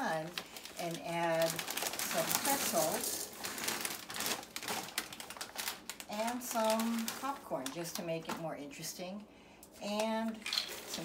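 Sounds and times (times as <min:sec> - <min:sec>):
pretzels pouring into plastic bowl: 0:00.3 - 0:07.3.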